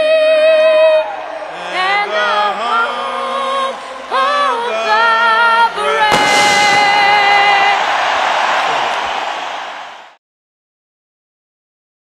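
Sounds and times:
girl singing: 0:00.0 - 0:01.1, 0:01.7 - 0:07.8
people singing along: 0:00.0 - 0:10.0
crowd cheering and applauding: 0:00.0 - 0:10.2.

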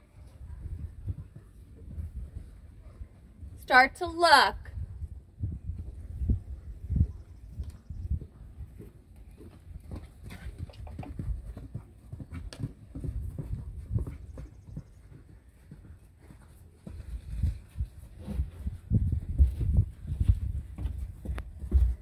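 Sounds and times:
horse hooves thudding on sand: 0:00.0 - 0:03.6, 0:04.7 - 0:22.0.

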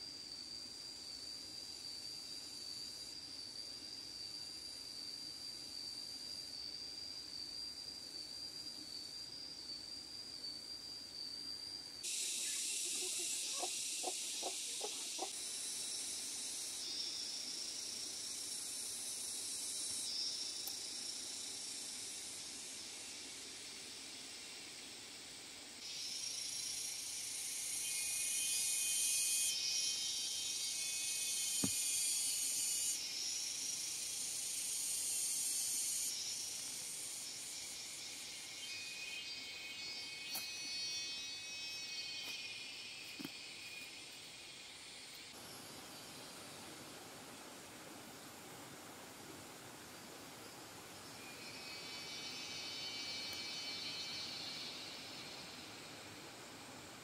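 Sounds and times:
insects buzzing shrilly: 0:00.0 - 0:57.0.

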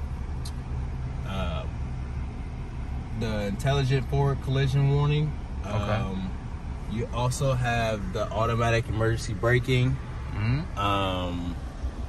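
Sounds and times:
car engine idling: 0:00.0 - 0:12.0
small tick: 0:00.4 - 0:00.6.

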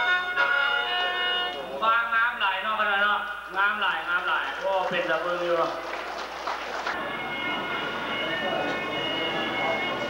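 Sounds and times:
mouth organ chord: 0:07.0 - 0:10.0.

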